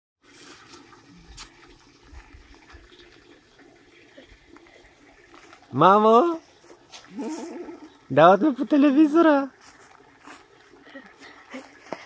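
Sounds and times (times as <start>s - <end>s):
faint outdoor background noise: 0.2s - 12.0s.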